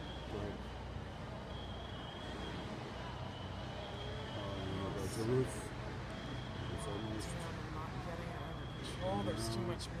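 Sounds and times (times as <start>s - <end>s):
fire engines humming: 0.0s - 10.0s.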